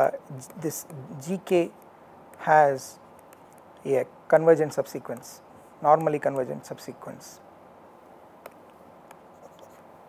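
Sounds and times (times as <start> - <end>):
low steady hiss: 0.0 - 10.0
stylus tapping on pen tablet: 8.4 - 9.8.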